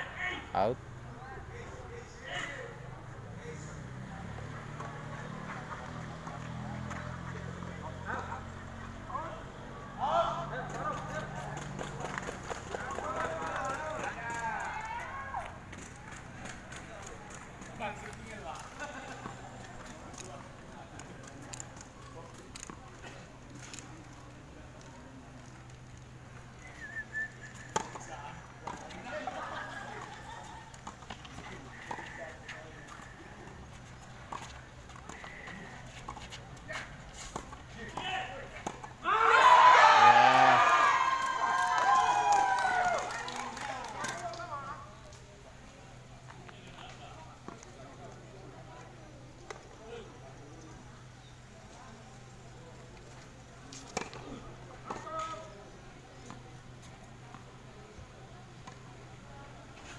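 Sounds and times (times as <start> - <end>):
tennis balls struck and bouncing: 27.7 - 39.1
people shouting: 39.0 - 43.0.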